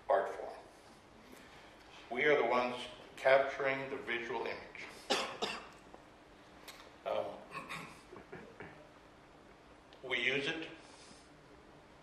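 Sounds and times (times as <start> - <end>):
person coughing: 5.1 - 5.7, 7.5 - 8.8.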